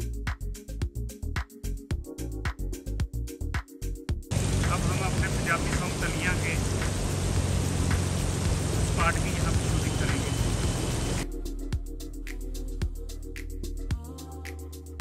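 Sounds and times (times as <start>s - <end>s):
background music: 0.0s - 15.0s
fountain jets splashing: 4.3s - 11.2s
water cascading into channel: 4.3s - 11.2s.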